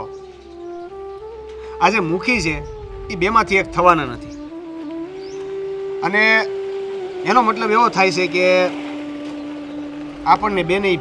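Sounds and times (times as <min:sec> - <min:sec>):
music with held note: 0:02.4 - 0:07.1.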